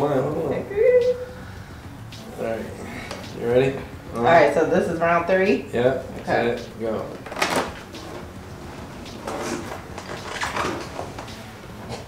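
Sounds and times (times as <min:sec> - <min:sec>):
rustling and movement noises: 0:00.0 - 0:12.0.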